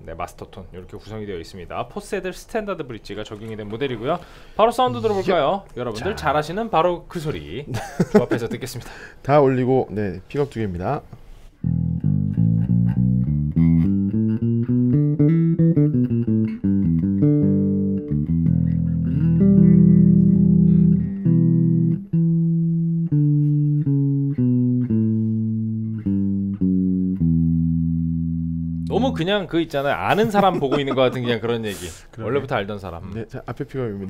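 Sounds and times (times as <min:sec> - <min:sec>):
bass guitar played fingerstyle: 0:11.6 - 0:29.4.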